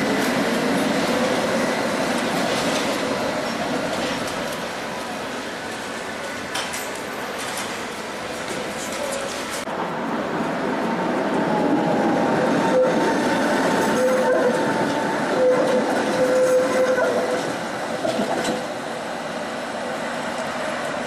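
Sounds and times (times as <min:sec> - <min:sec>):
tram wheels rumbling on rails: 0:00.0 - 0:21.0
tram whine: 0:00.0 - 0:21.0.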